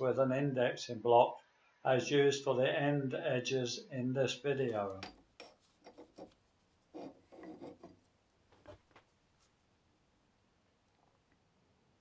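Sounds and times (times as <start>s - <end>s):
faint rubbing and clicking: 4.6s - 9.8s.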